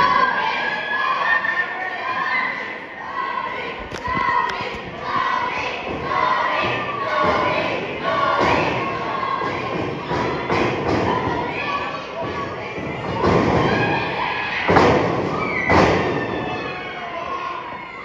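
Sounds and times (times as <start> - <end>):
crowd talking and shouting: 0.0 - 18.0.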